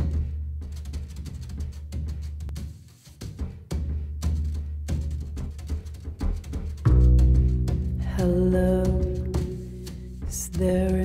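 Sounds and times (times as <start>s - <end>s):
drum strikes: 0.0s - 11.0s
jazz trio music: 6.6s - 11.0s.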